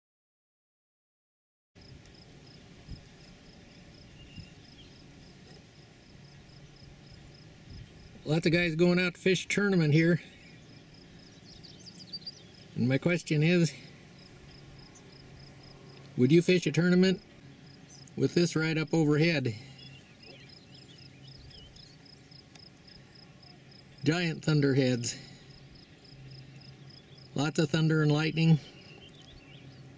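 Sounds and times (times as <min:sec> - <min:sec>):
cricket chirping: 0:01.8 - 0:08.2, 0:10.4 - 0:12.8, 0:14.0 - 0:16.0, 0:19.8 - 0:24.1, 0:24.9 - 0:27.4
faint low hum: 0:01.8 - 0:29.9
outdoor background noise: 0:01.8 - 0:29.9
bird twittering: 0:03.6 - 0:05.0, 0:10.1 - 0:24.2, 0:24.9 - 0:29.9.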